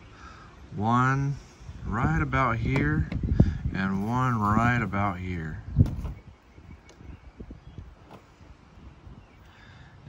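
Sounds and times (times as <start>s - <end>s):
wind buffeting microphone: 1.2s - 10.0s.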